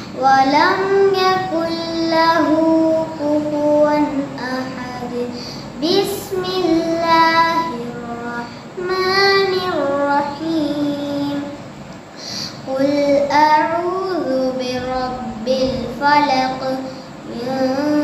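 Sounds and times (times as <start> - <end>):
boy chanting melodically: 0.0 - 18.0
breaths: 5.3 - 5.8, 12.1 - 12.7.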